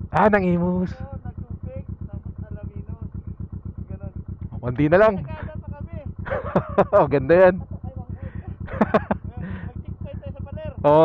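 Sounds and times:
motorcycle engine idling: 0.0s - 11.0s.

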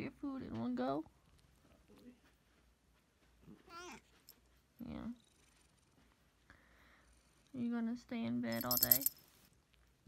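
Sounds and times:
cat meowing: 3.6s - 4.1s.

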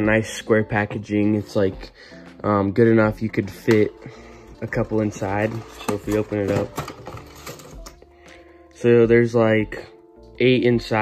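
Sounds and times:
soft background music: 0.0s - 11.0s
cardboard rustling: 3.2s - 8.0s.

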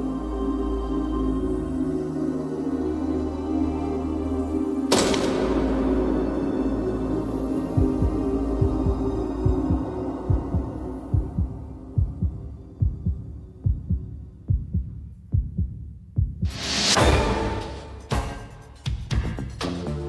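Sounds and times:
low drone: 0.0s - 14.5s.

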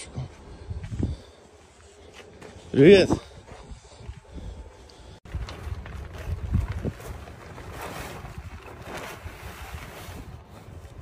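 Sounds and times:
wind buffeting microphone: 3.0s - 11.0s
fabric cover rustling: 5.6s - 11.0s.

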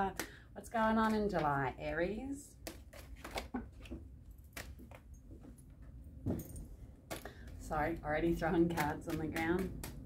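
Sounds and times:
cards being shuffled: 2.6s - 5.1s.

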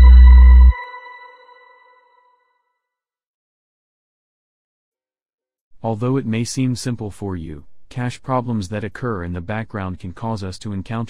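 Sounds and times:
heavy bass beat: 0.0s - 0.7s
ringing ping-like tone: 0.0s - 2.2s.

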